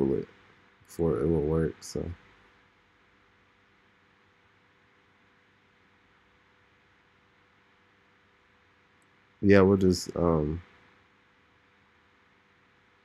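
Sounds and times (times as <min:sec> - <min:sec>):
low room hum: 0:00.0 - 0:13.0
microphone hiss: 0:00.0 - 0:13.0.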